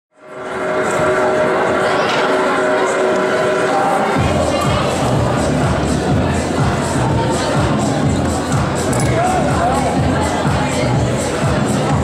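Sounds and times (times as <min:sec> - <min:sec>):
crowd noise: 0:00.1 - 0:12.0
music with low beat: 0:04.2 - 0:12.0.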